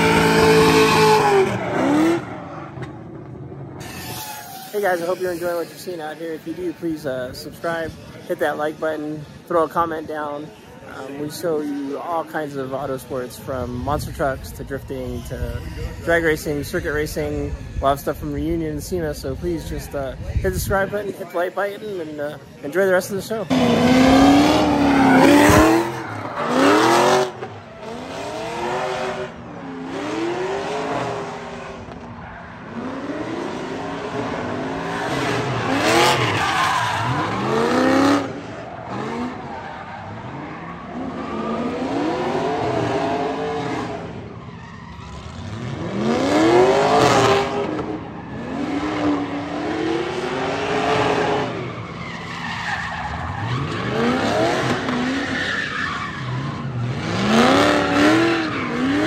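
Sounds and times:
car engine revving hard: 0.0 - 2.4, 23.5 - 31.8, 32.7 - 39.4, 45.2 - 51.7, 53.6 - 55.3, 56.5 - 59.0
tires squealing: 0.0 - 7.1, 22.3 - 59.0.

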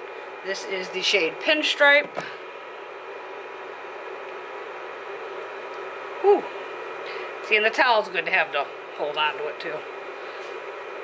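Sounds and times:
fan hum and hiss: 0.0 - 11.0.

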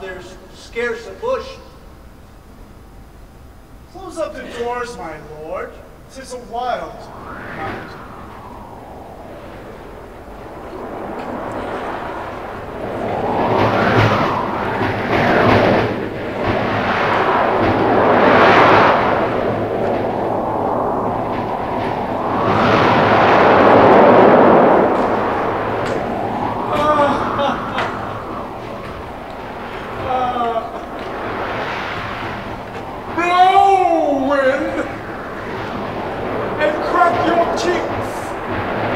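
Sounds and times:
wind: 0.0 - 38.9
rumbling thunder: 5.9 - 38.9.

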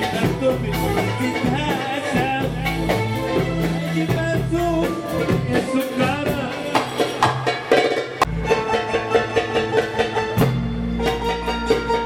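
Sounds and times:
live band with keyboards and percussion: 0.0 - 12.0.

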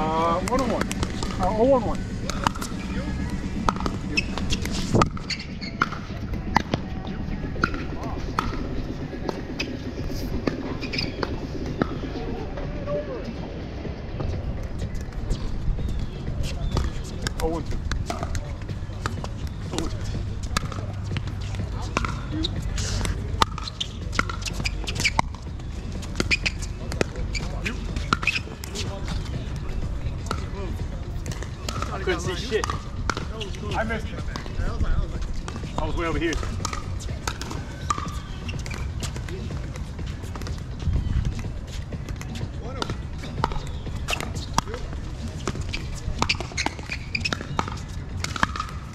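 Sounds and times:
ball bouncing on hard court: 0.4 - 6.9, 16.7 - 22.5, 23.4 - 29.2, 31.2 - 33.6, 35.4 - 40.6, 41.3 - 48.9.

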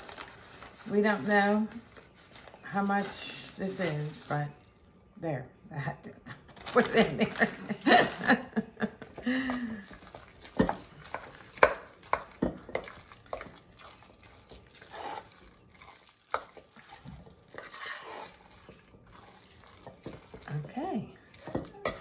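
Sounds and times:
spoon stirring salad in bowl: 9.0 - 22.0
spoon clinking against metal bowl: 21.3 - 22.0.

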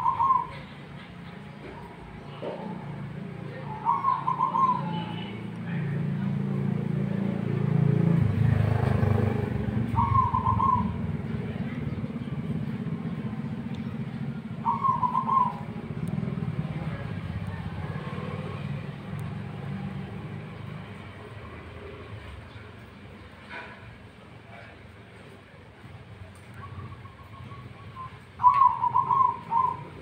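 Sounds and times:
dove cooing: 0.0 - 0.8, 3.6 - 5.0, 9.7 - 11.6, 14.2 - 18.7, 26.6 - 30.0.

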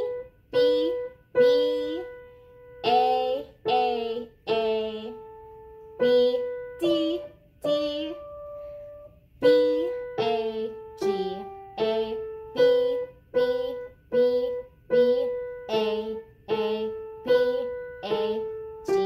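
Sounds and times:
piano melody: 0.0 - 19.0
woman singing note names: 0.0 - 19.0.

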